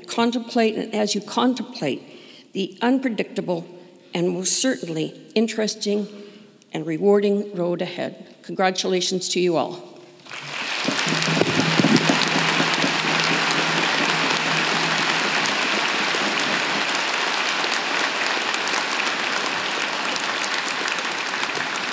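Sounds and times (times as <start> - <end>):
audience applauding: 10.2 - 21.9.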